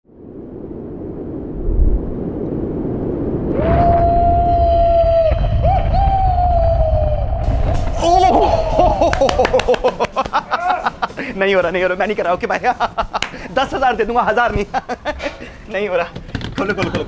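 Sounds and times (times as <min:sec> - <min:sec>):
low rumble: 0:00.0 - 0:09.5
rushing noise: 0:00.1 - 0:12.3
man screaming: 0:03.6 - 0:07.2, 0:07.9 - 0:09.3, 0:10.5 - 0:11.0.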